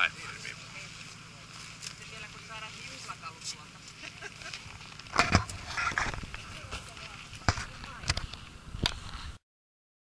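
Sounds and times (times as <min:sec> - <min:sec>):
faint voices: 0:00.0 - 0:08.4.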